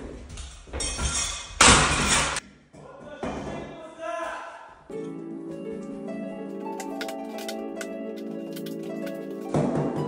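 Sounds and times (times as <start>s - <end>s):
objects crashing and clattering: 0.7s - 2.4s.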